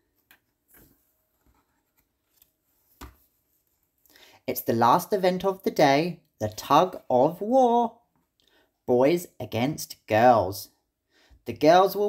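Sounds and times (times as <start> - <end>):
book page turning: 0.1 - 3.7.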